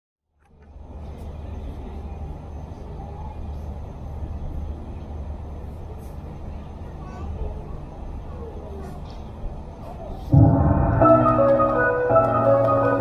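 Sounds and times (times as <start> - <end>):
deep urban rumble: 0.3 - 13.0
faint murmur of voices: 0.6 - 10.8.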